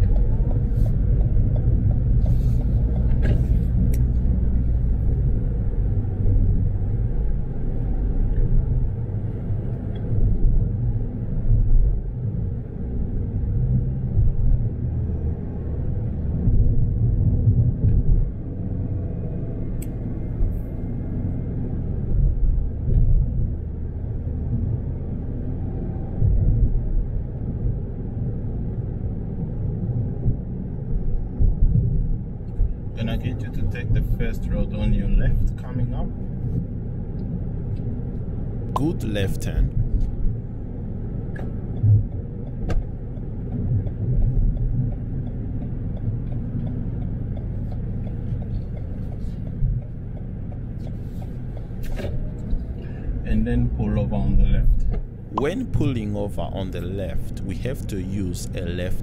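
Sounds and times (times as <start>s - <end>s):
car road rumble inside cabin: 0.0s - 59.0s.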